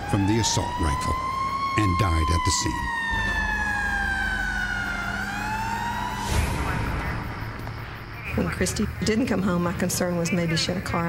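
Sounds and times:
ambulance siren wailing: 0.0s - 8.7s.

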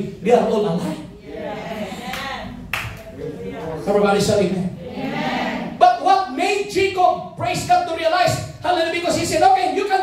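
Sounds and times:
man speaking into a microphone: 0.0s - 1.2s, 3.2s - 4.8s, 5.8s - 10.0s
hand clapping: 2.1s - 3.1s.

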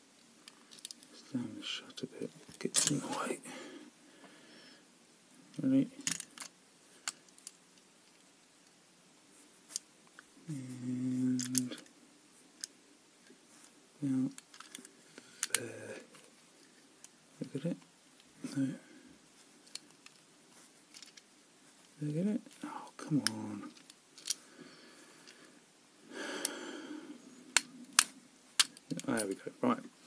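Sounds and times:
person murmuring: 2.6s - 3.8s, 10.4s - 11.8s, 15.5s - 16.2s, 18.4s - 19.1s, 22.0s - 23.8s
lock picking metallic clicks: 27.6s - 29.4s.

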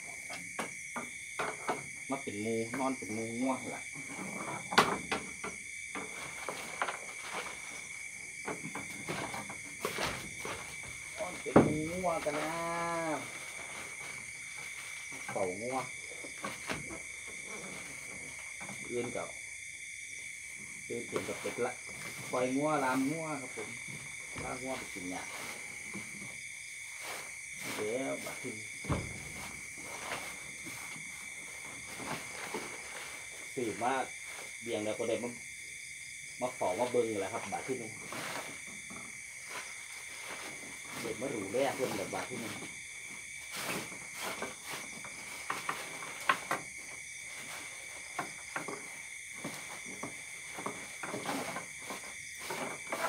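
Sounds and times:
night insects trilling: 0.0s - 53.0s
rustles and knocks on wooden floor: 0.1s - 3.0s, 4.0s - 19.2s, 20.7s - 33.6s, 37.3s - 53.0s.

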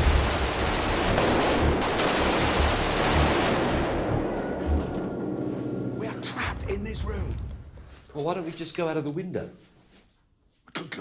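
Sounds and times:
automatic gunfire: 0.0s - 4.0s.

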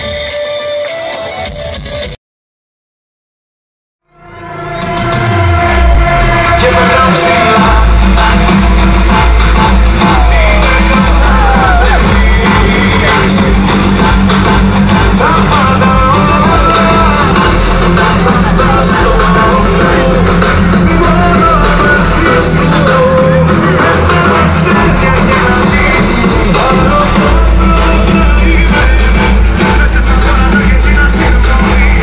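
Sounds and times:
live band through outdoor pa: 0.0s - 2.2s, 6.6s - 32.0s
person singing lead: 5.3s - 32.0s.

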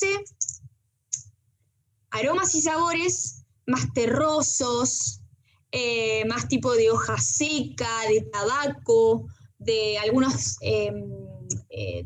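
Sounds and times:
woman speaking: 0.0s - 0.6s, 2.1s - 5.2s, 5.8s - 12.0s.

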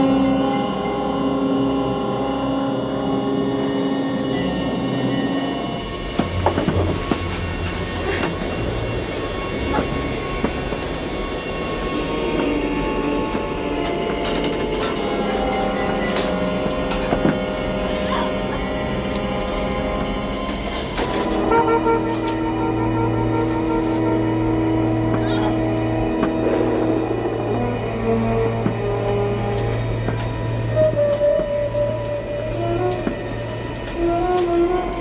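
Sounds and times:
film score held tones: 0.0s - 35.0s.

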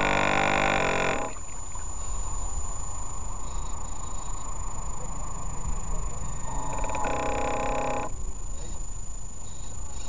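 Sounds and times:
model boat motor rumble and whine: 0.0s - 1.6s, 6.0s - 8.3s
held horn tone: 6.1s - 8.2s.

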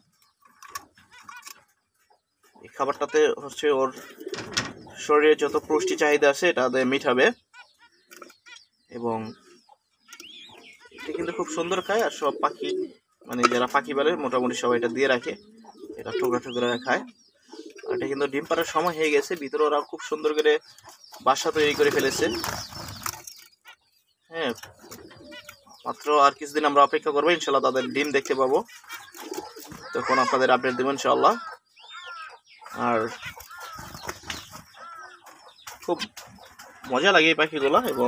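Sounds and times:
zebra finches calling: 0.0s - 38.0s
wings fluttering: 21.2s - 23.7s, 33.2s - 36.8s
person speaking: 37.3s - 38.0s.

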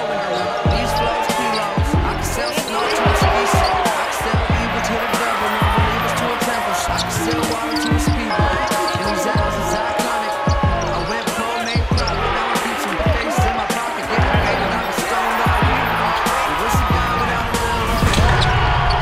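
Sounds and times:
music with low beat: 0.6s - 18.4s.

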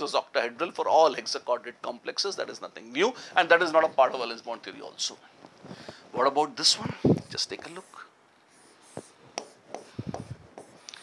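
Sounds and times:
pen scratching on board: 7.6s - 10.9s.

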